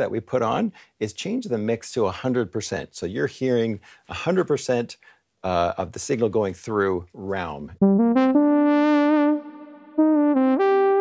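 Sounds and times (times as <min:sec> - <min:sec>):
synthesizer notes with reverb: 0:07.8 - 0:11.0.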